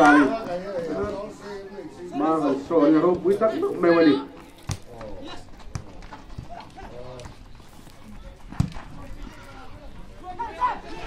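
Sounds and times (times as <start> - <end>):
faint shouting voices: 6.4 - 11.0.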